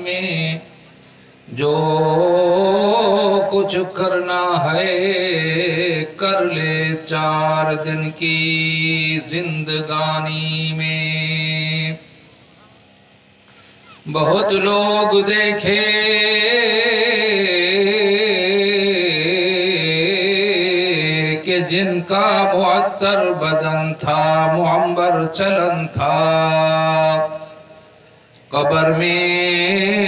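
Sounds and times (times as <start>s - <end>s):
man chanting into a microphone: 0.0s - 0.8s, 1.4s - 12.0s, 14.0s - 27.8s, 28.5s - 30.0s.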